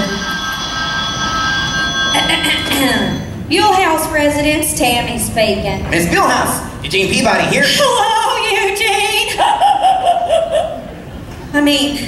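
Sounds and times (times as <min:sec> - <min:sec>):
telephone ringing: 0:00.0 - 0:03.5.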